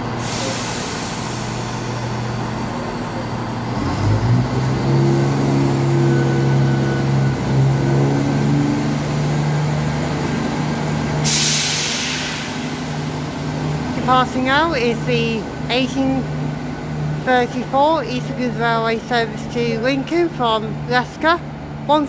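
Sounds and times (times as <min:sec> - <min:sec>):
diesel train engines running: 0:00.0 - 0:22.0
loud hiss of air: 0:00.2 - 0:02.1, 0:11.2 - 0:13.4.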